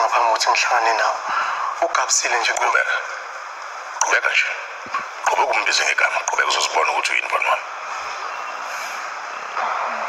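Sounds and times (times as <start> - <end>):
dialogue speech: 0.0 - 3.3, 3.9 - 7.7.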